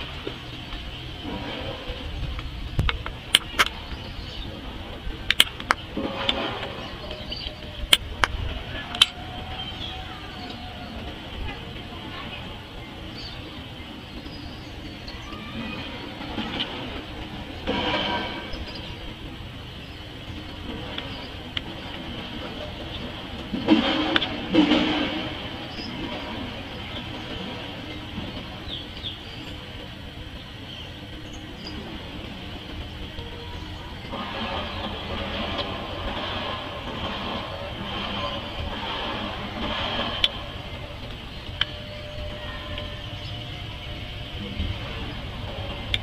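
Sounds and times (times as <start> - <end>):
train running on tracks: 0.0 - 46.0.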